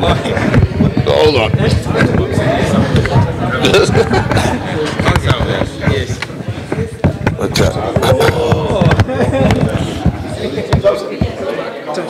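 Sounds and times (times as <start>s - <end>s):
microphones knocking together: 0.0s - 11.7s
background voices and chatter: 0.0s - 12.0s.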